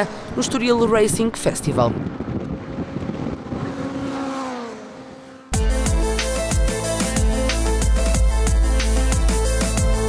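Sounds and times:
race car engines passing: 0:00.0 - 0:05.5
loud electronic music: 0:05.6 - 0:10.0.

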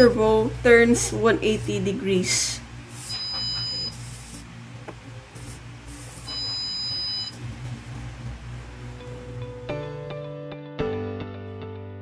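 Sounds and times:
high-pitched buzzer beeps: 0:03.0 - 0:04.1, 0:06.2 - 0:07.4.

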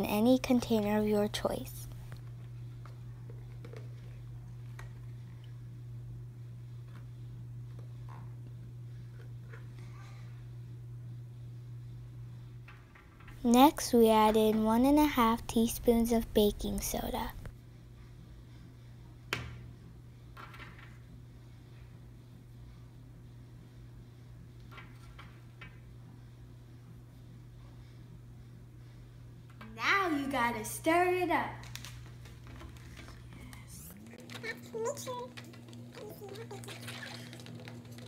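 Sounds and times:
low room hum: 0:00.0 - 0:38.0.

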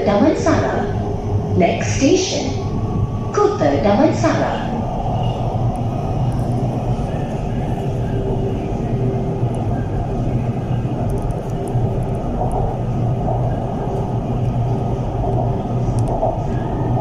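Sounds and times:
metro train wheels rumbling: 0:00.0 - 0:17.0.

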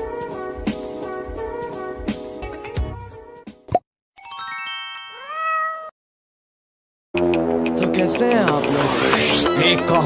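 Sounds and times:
music: 0:00.0 - 0:05.2, 0:07.2 - 0:10.0
chiming tone: 0:04.2 - 0:05.4
cartoon cat meow: 0:05.1 - 0:06.0.

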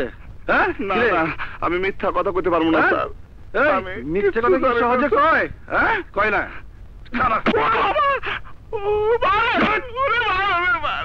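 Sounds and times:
man wailing in pain: 0:07.6 - 0:11.0.

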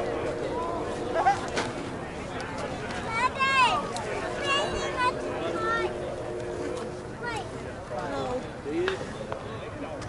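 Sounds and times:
voices calling: 0:00.0 - 0:08.4
steady motor hum: 0:00.0 - 0:08.7.

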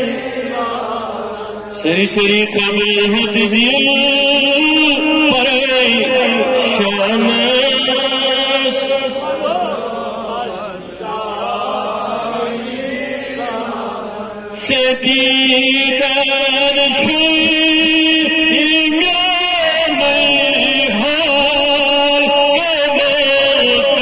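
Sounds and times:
man chanting through a microphone: 0:00.0 - 0:11.5, 0:14.0 - 0:24.0.

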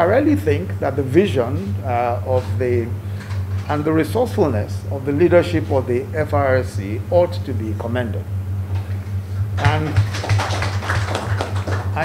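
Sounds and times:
low electrical hum: 0:00.0 - 0:12.0
audience applause: 0:09.6 - 0:12.0.

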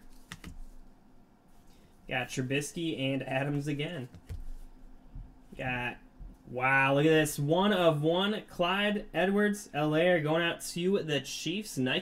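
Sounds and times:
card edges clicking: 0:00.0 - 0:00.8.

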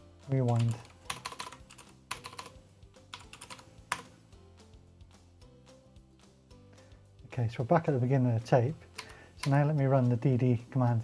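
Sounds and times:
typing on computer keyboard: 0:00.5 - 0:04.1.

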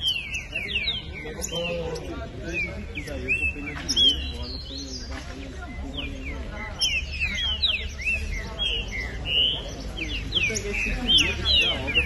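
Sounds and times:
songbirds singing whistled notes: 0:00.0 - 0:12.0.

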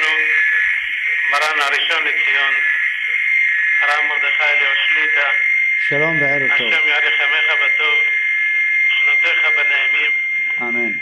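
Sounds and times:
man speaking on phone line: 0:00.0 - 0:03.2, 0:03.8 - 0:08.2, 0:08.8 - 0:11.0.

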